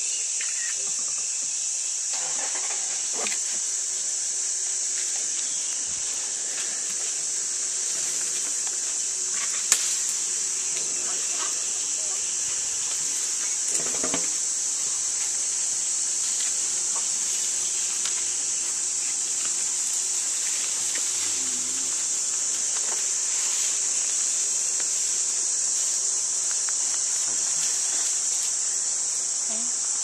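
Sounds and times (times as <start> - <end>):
insect chorus drone: 0.0 - 30.0.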